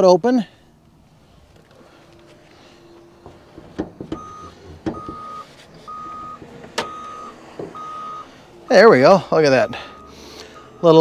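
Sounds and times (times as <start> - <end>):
car hood latch clunking: 3.2 - 5.3
reversing alarm beeping: 4.1 - 8.4, 9.6 - 11.0.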